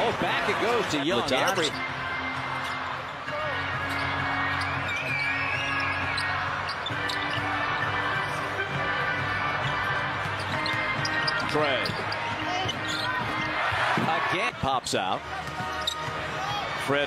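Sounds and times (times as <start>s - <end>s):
crowd: 0.0s - 17.0s.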